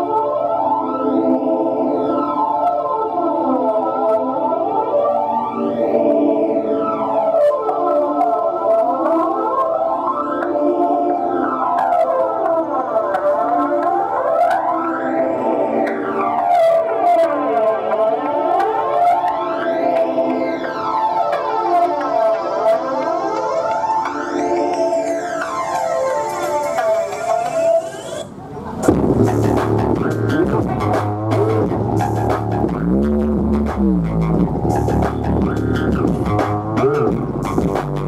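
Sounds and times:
synthesizer tones sweeping in pitch: 0.0s - 38.0s.

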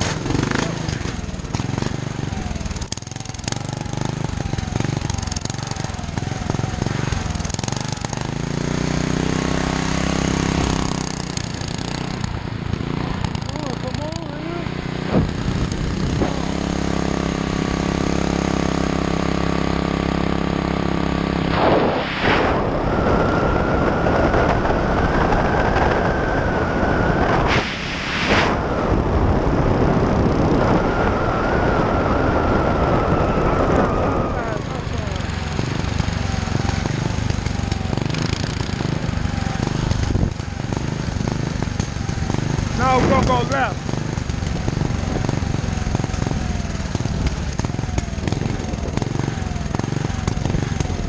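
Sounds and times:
mini bike engine running: 0.0s - 21.6s, 28.6s - 51.0s
wind rushing over microphone: 14.6s - 18.8s, 20.8s - 51.0s
thin whine: 21.0s - 51.0s.

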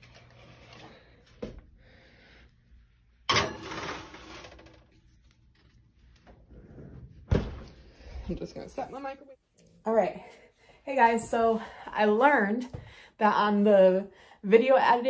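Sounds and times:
metal baking sheet scraping on rack: 3.3s - 5.0s.

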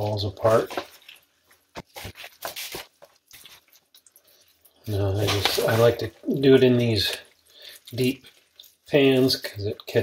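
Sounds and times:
meat tearing and squelching: 0.4s - 10.0s.

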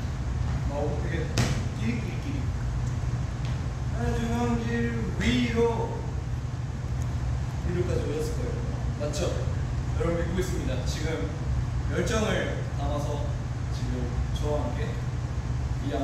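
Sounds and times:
steady low hum: 0.0s - 16.0s
sharp knock or clap: 1.4s - 1.6s.

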